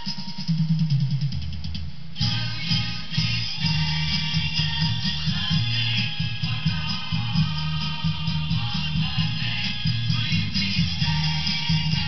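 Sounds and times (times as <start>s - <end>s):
drums: 0.0s - 12.0s
pop song through speakers: 0.0s - 12.0s
bass line: 2.2s - 12.0s.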